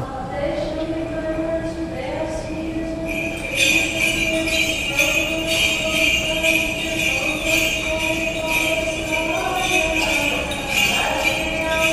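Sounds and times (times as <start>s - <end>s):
sustained held tones: 2.5s - 11.9s
small bells jingling: 3.0s - 11.9s.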